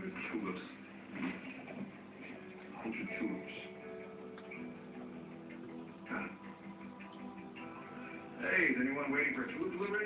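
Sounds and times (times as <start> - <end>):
television background music: 0.0 - 10.0
dialogue: 1.6 - 10.0.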